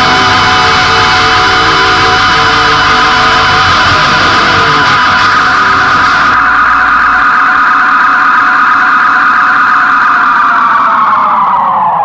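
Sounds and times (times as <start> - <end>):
droning chord music: 0.0 - 8.7.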